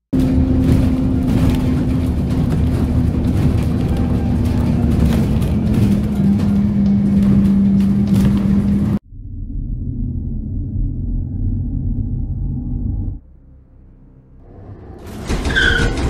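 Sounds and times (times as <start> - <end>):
road rumble: 0.1 - 16.0
vehicle engine hum: 0.1 - 16.0.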